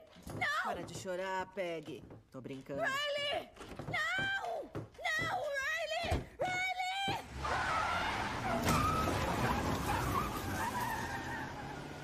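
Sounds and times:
tyres squealing on wet pavement: 7.2 - 12.0.

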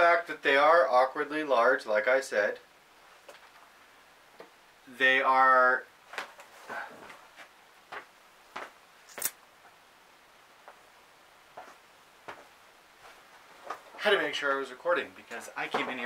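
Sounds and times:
faint knocks and rustles: 6.0 - 8.8, 11.5 - 14.0
sharp click: 9.1 - 9.4.

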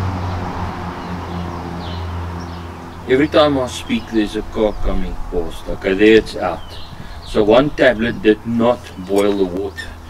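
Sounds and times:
passing car engine: 0.0 - 10.0.

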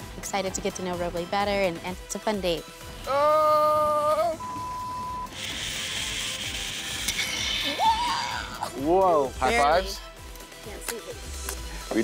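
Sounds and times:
zip line trolley whirring: 5.3 - 8.6.

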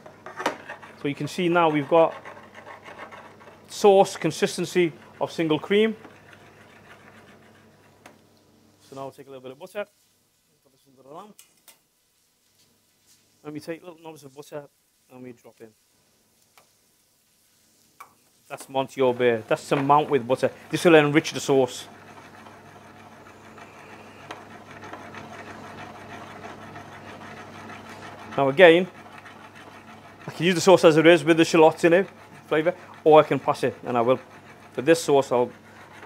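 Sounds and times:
low hum of kitchen equipment: 0.0 - 36.0
sauce simmering in saucepan: 14.7 - 36.0.

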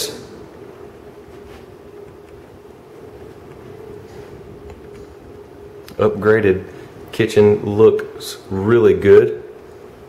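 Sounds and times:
faint background noise: 0.0 - 10.0
steady low hum: 0.0 - 10.0.

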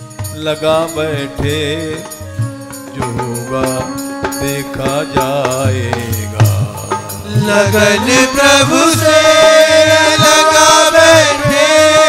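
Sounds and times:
held instrumental tones: 0.0 - 12.0
voices chanting: 6.8 - 12.0.

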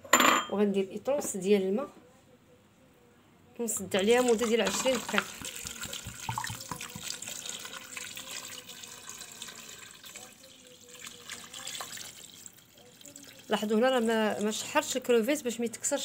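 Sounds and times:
water pouring into a pot: 3.9 - 14.8.

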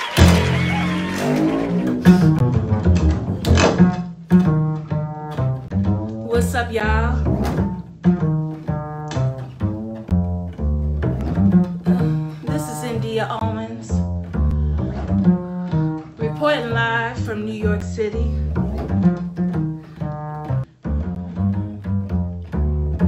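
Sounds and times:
double bass plucked jazz line: 0.0 - 23.0.

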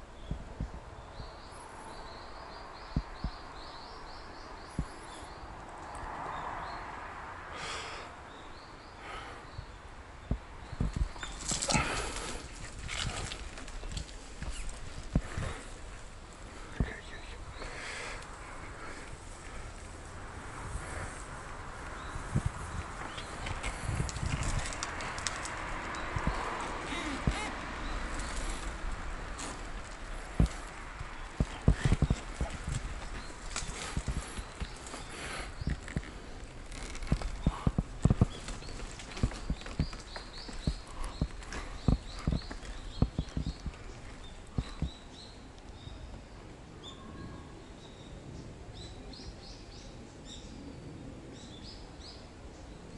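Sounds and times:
wheelchair rolling on pavement: 10.8 - 45.0.

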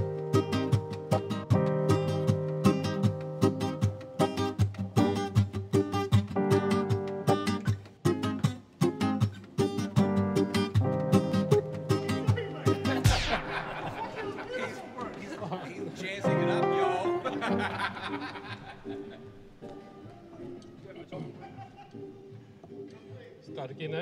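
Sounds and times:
band music with strummed guitar: 0.0 - 14.4
high swooshing sweep falling: 13.0 - 14.1.

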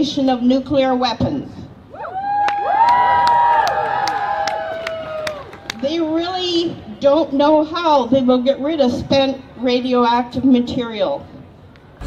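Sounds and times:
crowd cheering and whooping: 1.9 - 5.8.

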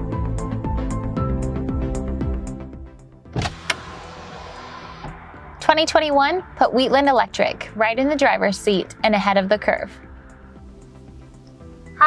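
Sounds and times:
power window motor running: 3.4 - 5.2.

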